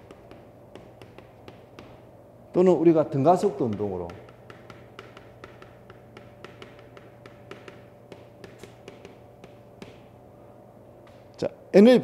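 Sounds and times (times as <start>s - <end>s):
chalk tapping and scratching: 0.0s - 2.1s, 3.5s - 10.2s
faint steady hum: 0.0s - 12.0s.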